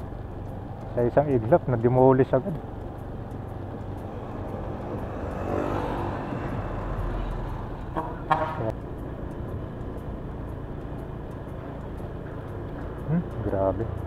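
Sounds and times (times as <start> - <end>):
vehicle passing by: 0.0 - 8.8
street traffic rumble: 0.0 - 14.0.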